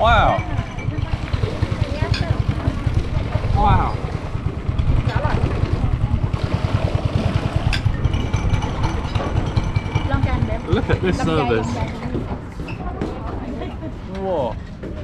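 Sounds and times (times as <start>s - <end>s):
boat engine puttering: 0.0s - 15.0s.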